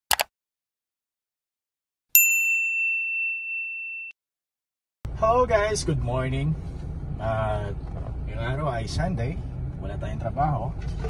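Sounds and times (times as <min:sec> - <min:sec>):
bright bell ding: 0:02.2 - 0:04.2.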